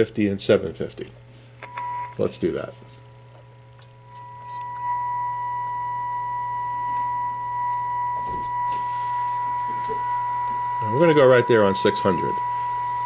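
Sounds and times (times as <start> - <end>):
low steady hum: 0.0 - 13.0
steady test tone from radio: 1.6 - 2.3, 4.1 - 13.0.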